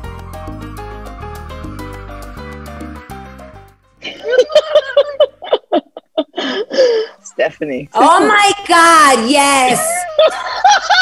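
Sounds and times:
person laughing: 4.0s - 7.2s, 9.7s - 11.0s.

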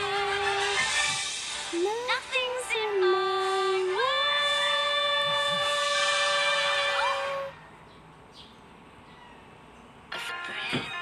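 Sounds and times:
faint hiss: 0.0s - 7.5s.

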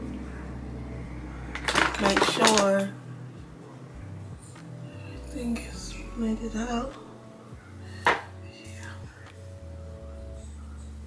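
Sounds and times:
low steady hum: 0.0s - 11.0s
woman talking: 1.9s - 3.0s, 5.3s - 7.0s.

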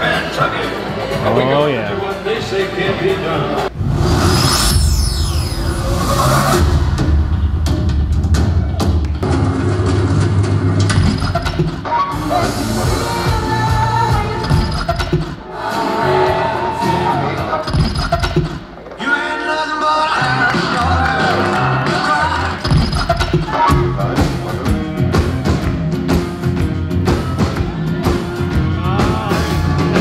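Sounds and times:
stage show music with singing: 0.0s - 3.8s, 5.8s - 30.0s.

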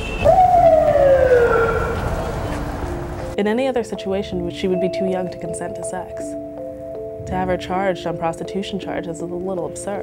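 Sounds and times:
siren wailing: 0.0s - 2.6s.

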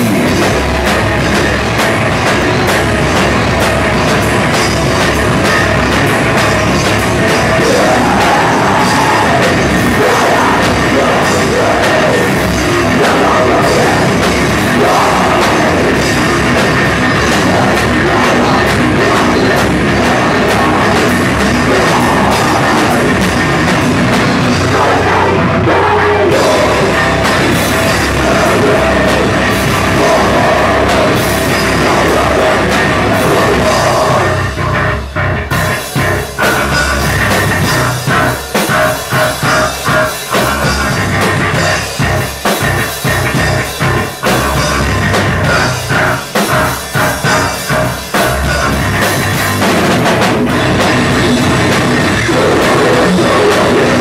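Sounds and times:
rock band playing loud: 0.0s - 54.0s.

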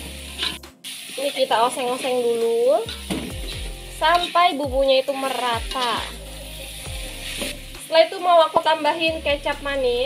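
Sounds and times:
food sizzling in a wok: 0.0s - 10.0s
metal spatula scraping pan: 0.4s - 0.6s.

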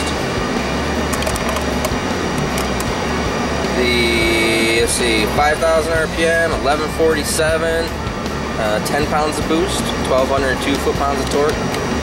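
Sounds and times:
large fan running: 0.0s - 12.0s.

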